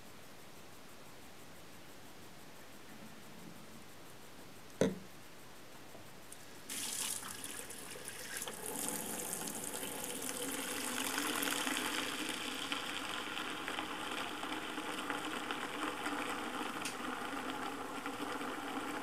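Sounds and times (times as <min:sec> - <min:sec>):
tap water running into bucket: 0:06.7 - 0:19.0.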